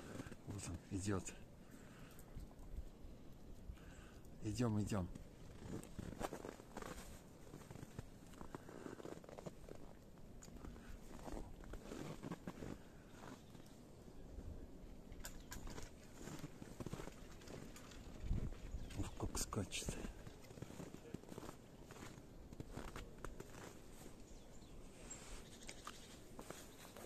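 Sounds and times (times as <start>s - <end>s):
footsteps in snow: 4.8s - 9.9s, 10.6s - 13.8s, 19.8s - 27.0s
faint rustling: 5.1s - 13.8s.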